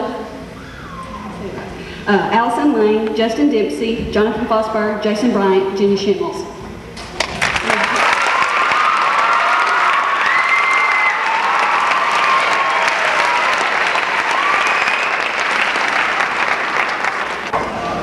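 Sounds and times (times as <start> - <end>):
audience applauding: 7.1 - 17.6.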